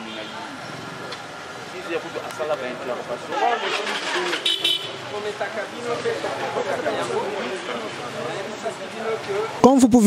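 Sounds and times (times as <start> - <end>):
voices talking: 0.0 - 10.0
vehicle horn toot: 3.4 - 5.0.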